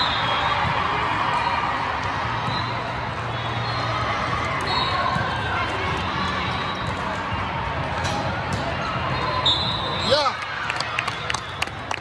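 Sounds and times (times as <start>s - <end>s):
crowd chatter in echoing hall: 0.0s - 11.1s.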